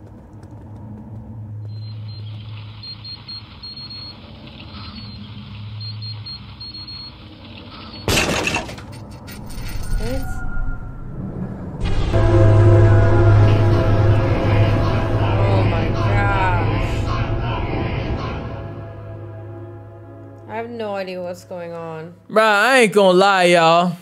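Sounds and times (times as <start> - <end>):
low steady hum: 8.1 - 22.3
short rising sound: 9.5 - 20.6
loud crash: 10.6 - 19.8.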